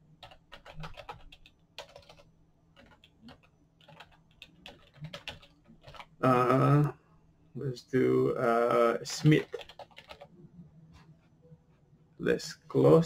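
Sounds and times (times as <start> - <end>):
computer keyboard typing: 0.2 - 6.2, 9.1 - 10.3.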